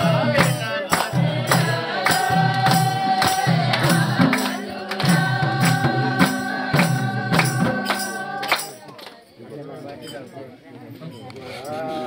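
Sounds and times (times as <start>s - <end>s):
person singing unaccompanied: 0.0s - 8.9s.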